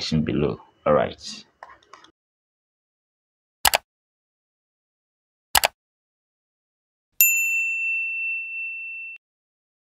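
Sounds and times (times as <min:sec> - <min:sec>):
bright notification bell ding: 0:07.2 - 0:09.2.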